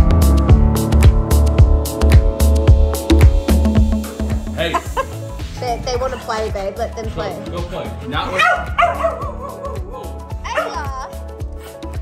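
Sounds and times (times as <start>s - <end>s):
music with steady beat and vocal: 0.0s - 8.0s
dog barking: 8.3s - 11.0s.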